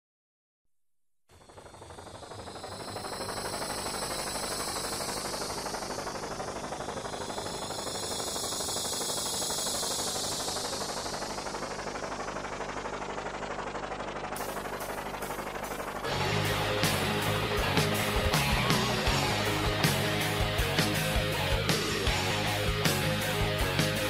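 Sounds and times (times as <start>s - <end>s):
helicopter rotors chopping: 1.3s - 24.0s.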